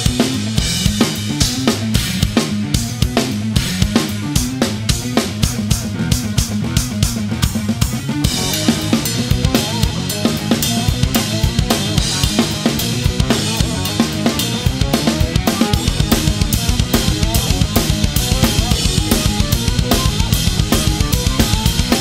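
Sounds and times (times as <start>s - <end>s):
progressive metal backing track: 0.0s - 22.0s
rock drum kit played fast: 0.0s - 22.0s.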